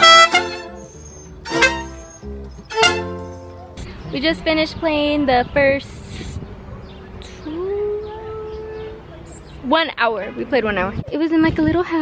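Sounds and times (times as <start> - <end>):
mariachi band playing chords: 0.0 - 3.8.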